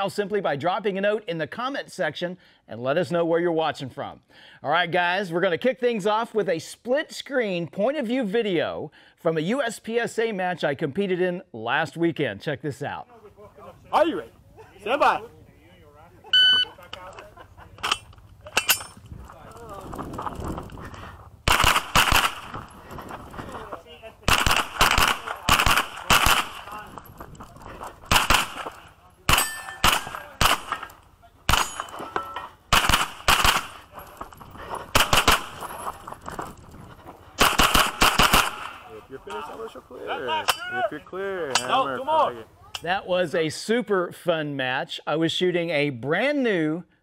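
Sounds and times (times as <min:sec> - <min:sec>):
shot timer beep: 0:16.4 - 0:16.7
carbine firing strings of shots: 0:21.4 - 0:22.8, 0:24.2 - 0:26.9, 0:28.0 - 0:32.0, 0:32.7 - 0:33.9, 0:34.9 - 0:35.6, 0:37.4 - 0:39.0.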